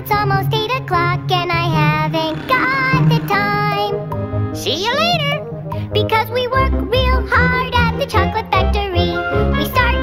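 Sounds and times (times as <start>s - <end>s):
high voice singing: 1.7s - 4.1s.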